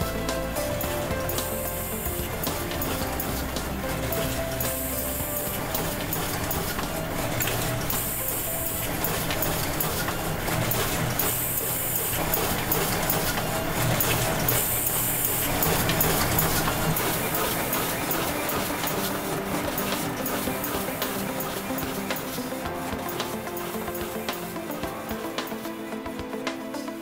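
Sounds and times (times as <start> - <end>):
background music: 0.0 - 27.0
paper cutter running: 0.5 - 24.7.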